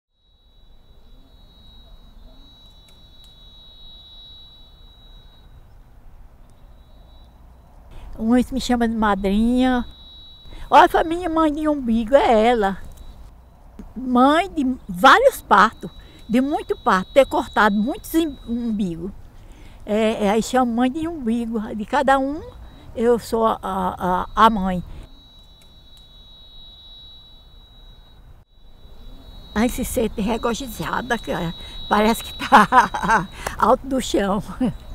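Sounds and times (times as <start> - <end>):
high-pitched whine: 0.1 - 19.2.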